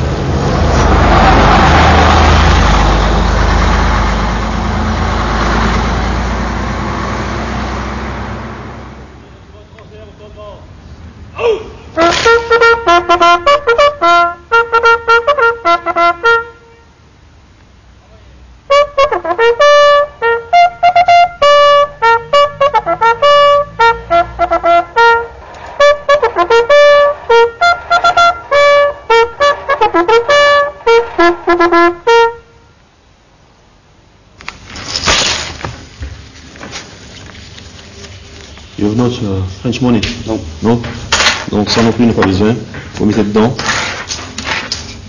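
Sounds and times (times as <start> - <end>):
bugle call: 12.0 - 17.0, 18.7 - 32.8.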